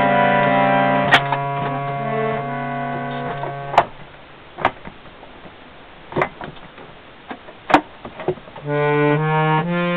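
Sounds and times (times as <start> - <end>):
harmonium held chord: 0.0 - 3.8, 8.6 - 9.9.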